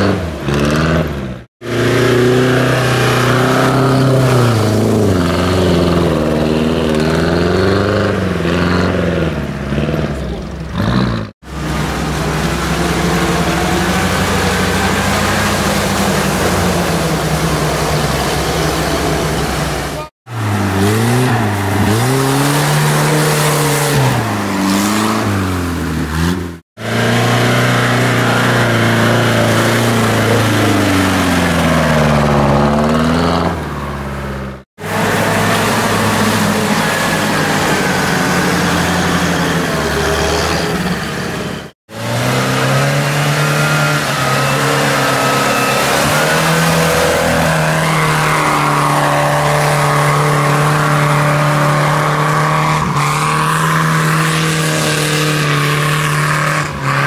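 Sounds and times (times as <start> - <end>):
off-road vehicle engines revving: 0.0 - 57.0.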